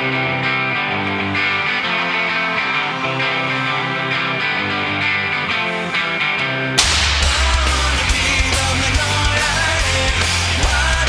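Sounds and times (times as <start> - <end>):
electric guitar: 0.0 - 11.0
rock band playing: 0.0 - 11.0
cymbal crash: 6.8 - 9.9.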